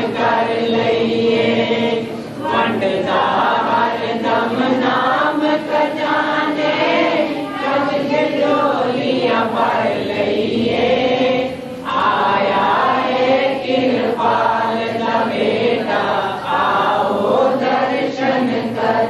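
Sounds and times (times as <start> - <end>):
group singing devotional chant: 0.0 - 19.0.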